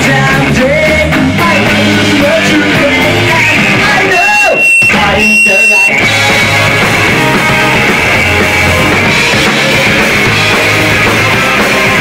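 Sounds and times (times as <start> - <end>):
punk rock band playing: 0.0 - 12.0
high steady whine: 4.1 - 6.2.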